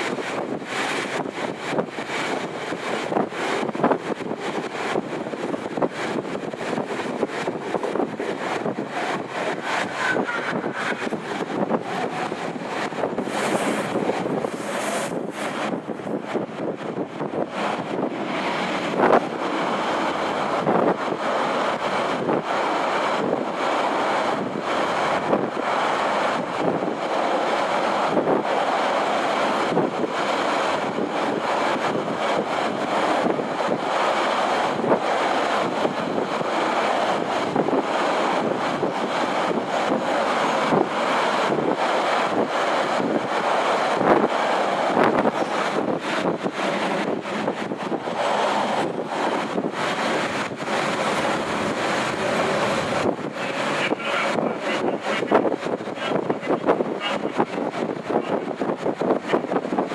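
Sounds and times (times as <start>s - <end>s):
train wheels running on rails: 0.0s - 59.9s
wind buffeting microphone: 0.0s - 59.9s.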